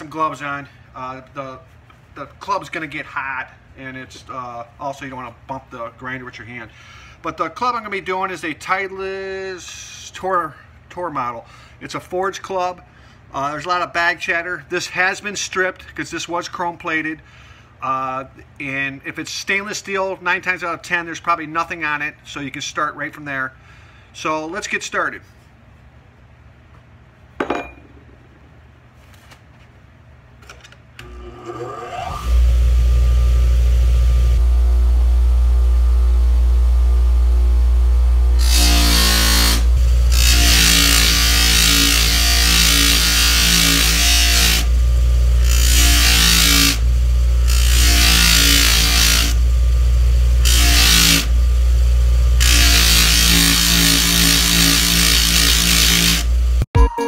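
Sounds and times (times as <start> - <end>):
bench grinder motor hum: 31.0 - 56.6.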